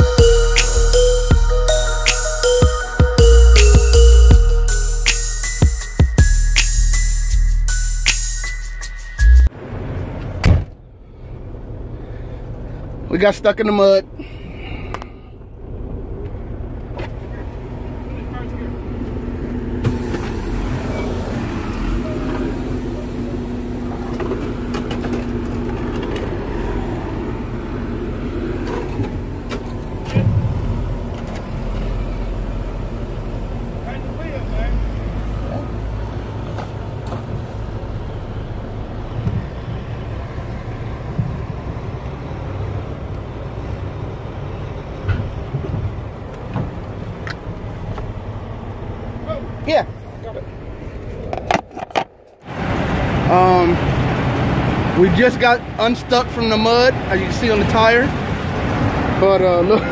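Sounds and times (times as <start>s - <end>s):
heavy diesel engines running: 0.0s - 8.1s, 9.0s - 59.9s
loud thump: 10.4s - 10.8s.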